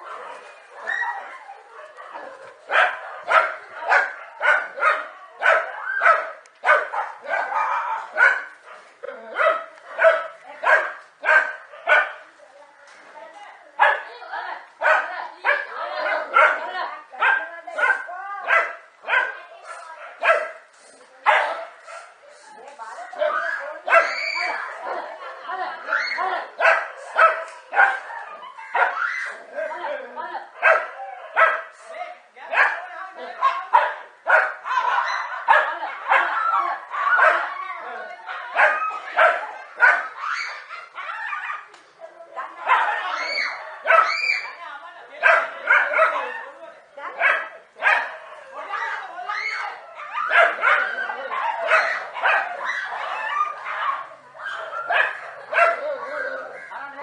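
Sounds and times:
dogs wavering cries: 0.0 - 4.9, 23.2 - 29.6, 34.3 - 41.7, 42.5 - 44.6, 47.2 - 57.0
dogs barking: 0.0 - 12.2, 13.8 - 14.2, 14.8 - 22.2, 23.2 - 29.2, 30.5 - 31.8, 32.5 - 37.6, 38.2 - 41.7, 42.4 - 44.6, 45.2 - 57.0.

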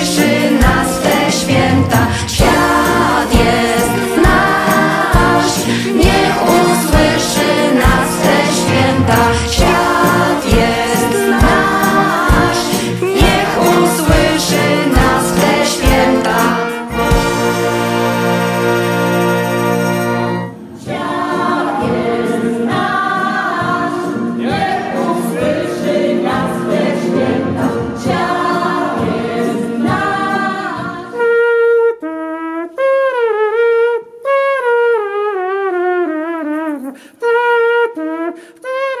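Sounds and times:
solo voice singing unaccompanied: 0.0 - 16.8
mixed choir singing: 0.0 - 18.1, 20.7 - 31.2
brass band playing: 0.0 - 20.7.

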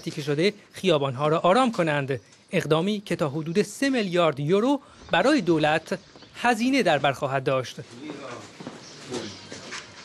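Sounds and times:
people talking in the street: 0.0 - 10.0.

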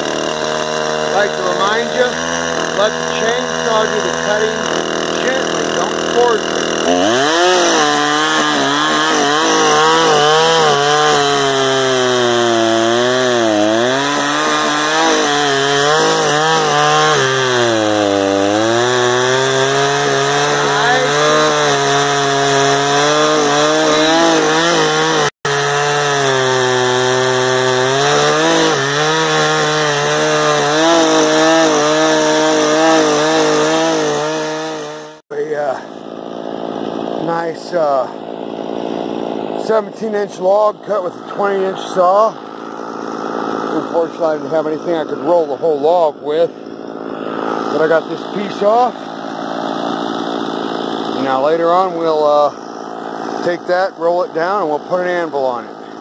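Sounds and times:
chainsaw cutting log: 0.0 - 56.0.

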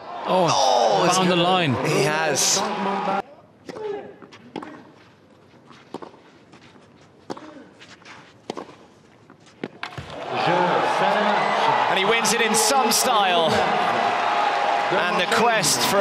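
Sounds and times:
racket striking tennis ball: 8.4 - 8.8
crowd cheering and applause: 10.1 - 16.0.

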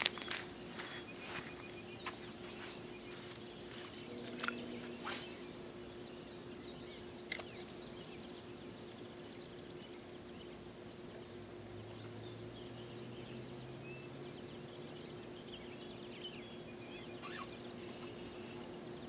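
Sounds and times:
faint steady hum: 0.0 - 19.0
small birds singing: 0.0 - 19.0.

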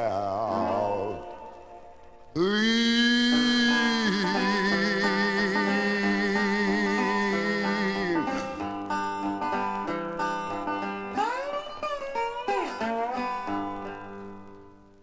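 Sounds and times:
blues guitar: 0.0 - 15.0.

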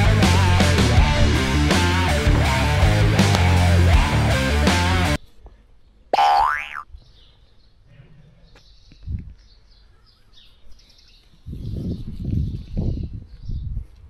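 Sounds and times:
cartoon boing sound effect: 6.2 - 6.8.

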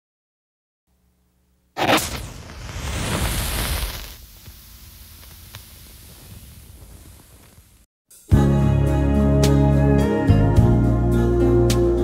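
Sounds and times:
sudden burst of noise: 1.8 - 7.8
scattered crackles: 1.8 - 7.9.

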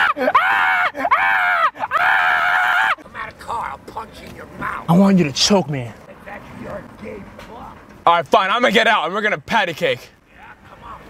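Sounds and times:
man screaming: 0.0 - 3.0.

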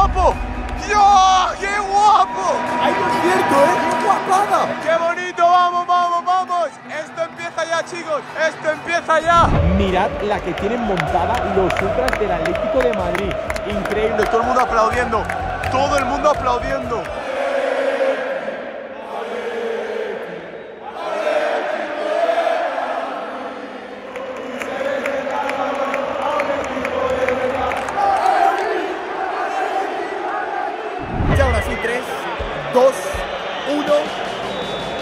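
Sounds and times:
stadium crowd singing and chanting: 8.0 - 35.0
low thump: 9.4 - 10.1.

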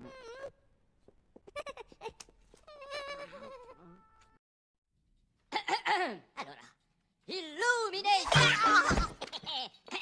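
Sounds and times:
high bleat-like cartoon voice: 8.2 - 9.0.

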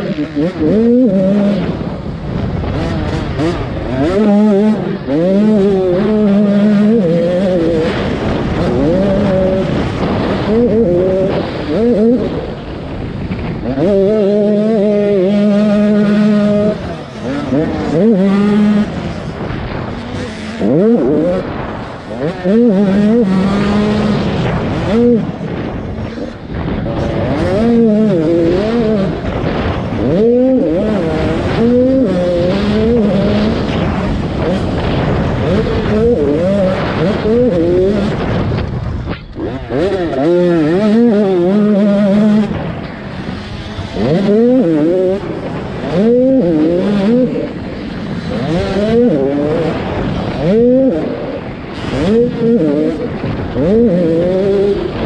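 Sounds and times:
motocross bike engine revving: 0.0 - 55.0
wind rushing on helmet: 0.0 - 55.0.

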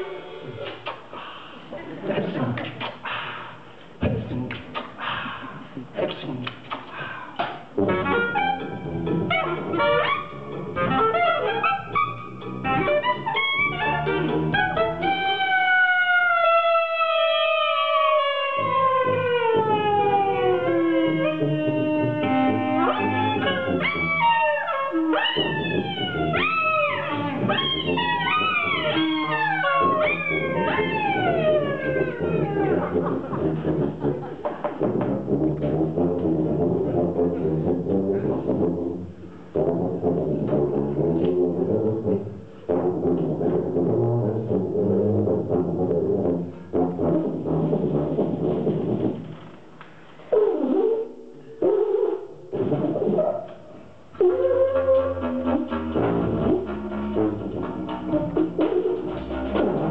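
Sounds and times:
sliding bent horn notes: 6.0 - 59.9
live jazz band: 6.2 - 59.9
horn notes swooping and sliding: 7.5 - 15.4, 54.2 - 59.9.

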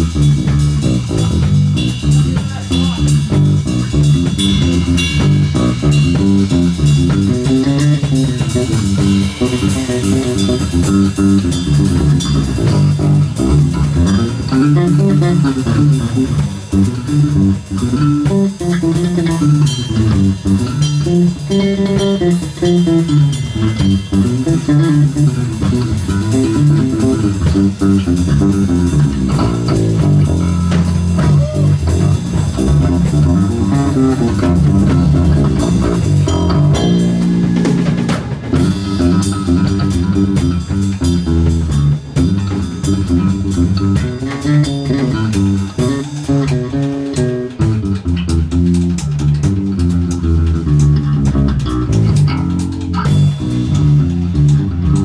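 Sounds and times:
drum kit: 0.0 - 55.0
electric bass: 0.0 - 55.0
electric guitars: 0.0 - 55.0.

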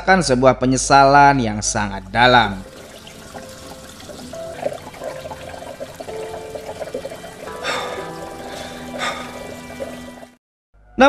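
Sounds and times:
tap water running into sink: 2.0 - 10.4
soft background music: 2.0 - 11.0.

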